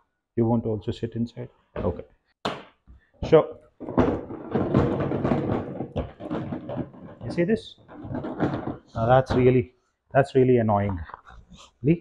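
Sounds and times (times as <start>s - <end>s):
loose items rattling in plastic box: 3.8s - 9.6s.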